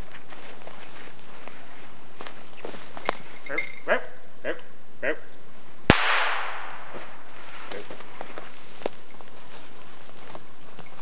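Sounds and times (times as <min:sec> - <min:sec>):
shotgun shot echoing: 0:05.9 - 0:07.2.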